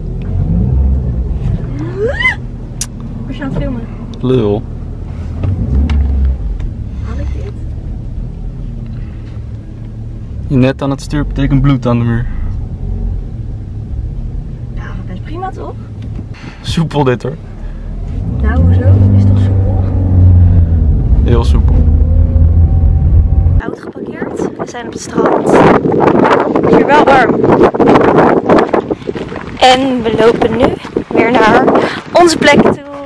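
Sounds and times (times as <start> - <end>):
car engine pulling away: 0.0 - 23.7
road noise: 0.0 - 33.0.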